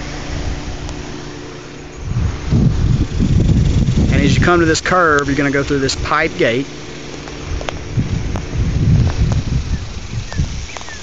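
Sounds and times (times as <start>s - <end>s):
road noise: 0.0s - 11.0s
vehicle engine humming: 0.0s - 11.0s
wind buffeting microphone: 1.9s - 6.6s, 7.3s - 11.0s.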